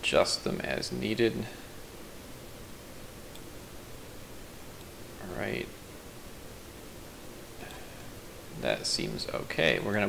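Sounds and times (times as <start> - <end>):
low hiss of room tone: 0.0 - 10.0
computer mouse clicks: 3.3 - 3.5.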